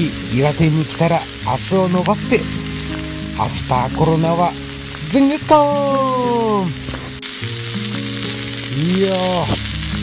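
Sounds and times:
meat and vegetables sizzling on grill: 0.0 - 10.0.

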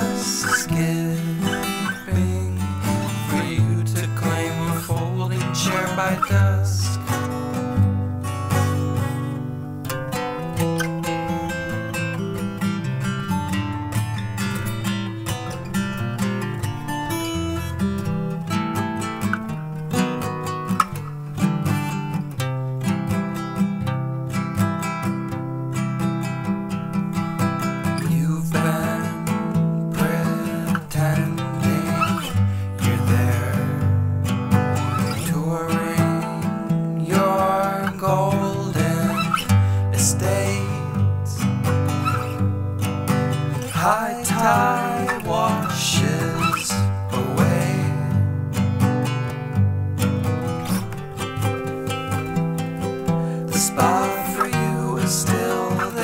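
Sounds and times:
strummed acoustic guitar: 0.0 - 56.0.

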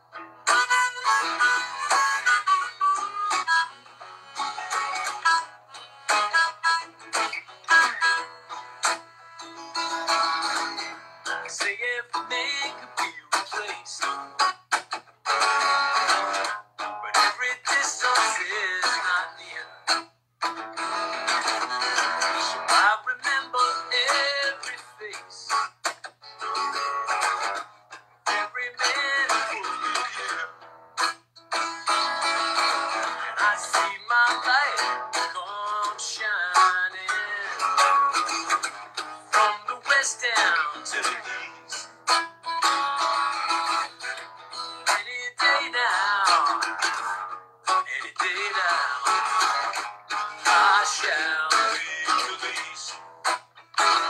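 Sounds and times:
acoustic guitar strumming: 0.0 - 54.0
harmonica playing: 0.4 - 11.4.

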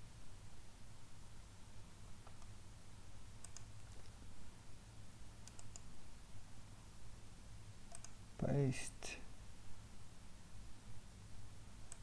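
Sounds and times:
faint computer mouse clicks: 3.4 - 4.1, 5.4 - 5.9, 7.9 - 8.2.

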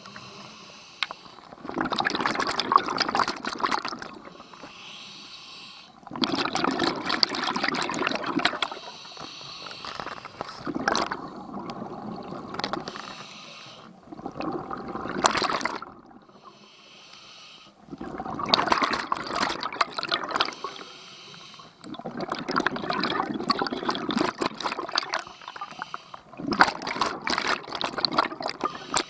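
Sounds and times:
hissing regulator inhalations: 0.0 - 1.4, 4.2 - 6.0, 8.6 - 10.7, 12.8 - 14.0, 16.3 - 17.8, 20.4 - 21.8, 25.2 - 26.3, 28.6 - 29.0
bubbling exhaust underwater: 0.0 - 4.9, 5.9 - 16.6, 17.8 - 29.0.

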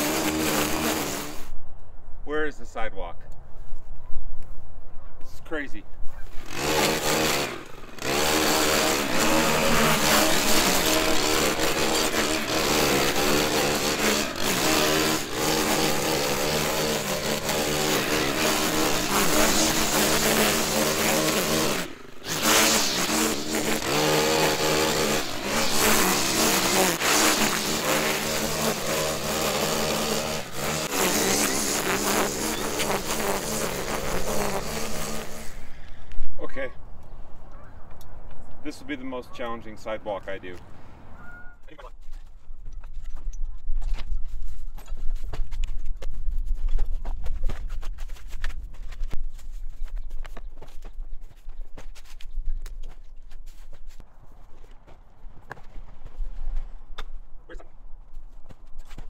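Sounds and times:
string trimmer cutting grass: 0.0 - 1.6, 6.2 - 36.4.

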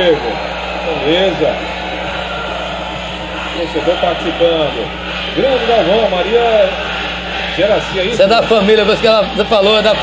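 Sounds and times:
stadium crowd noise: 0.0 - 10.0.

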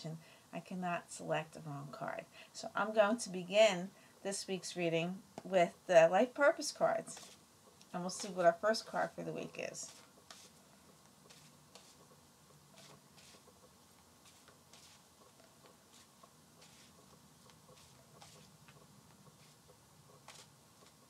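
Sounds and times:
cards being shuffled: 7.1 - 7.4, 9.8 - 10.5, 11.2 - 12.0, 14.2 - 18.8, 20.2 - 21.0.

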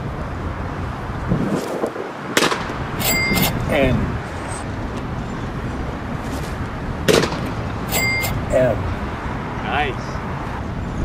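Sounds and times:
city background noise: 0.0 - 11.0
short high electronic beep: 3.0 - 3.6, 7.9 - 8.4.

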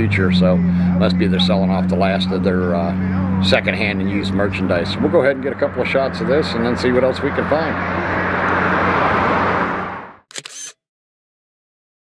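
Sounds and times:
road traffic: 0.0 - 10.8
camera shutter clicks: 10.3 - 10.8.

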